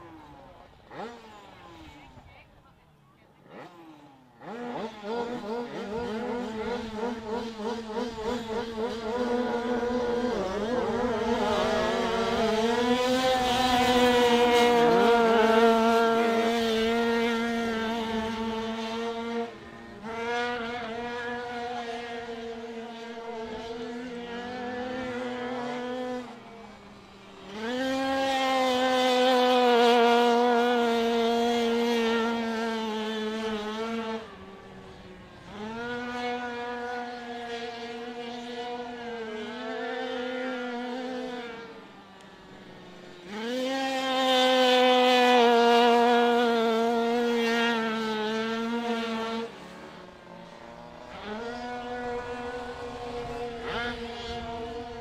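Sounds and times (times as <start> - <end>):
motorcycle engines racing: 0.0 - 55.0.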